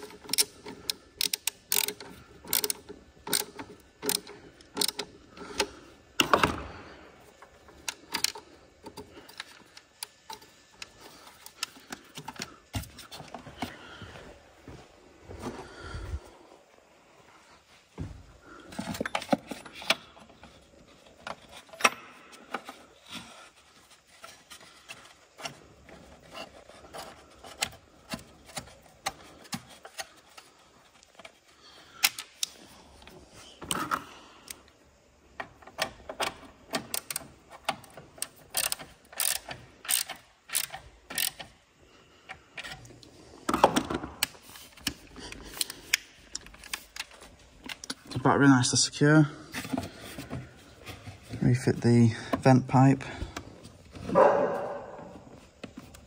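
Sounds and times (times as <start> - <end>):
socket ratchet clicking: 0.0 - 6.3, 7.8 - 8.9, 35.8 - 41.5.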